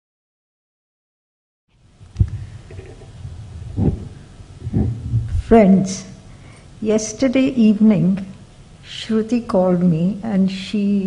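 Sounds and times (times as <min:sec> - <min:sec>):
low steady rumble: 0:01.9 - 0:10.4
soft thumps: 0:02.2 - 0:05.6.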